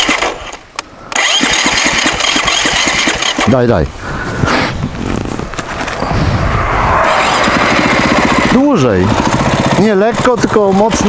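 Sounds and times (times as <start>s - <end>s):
motorcycle engine running: 7.0s - 11.0s.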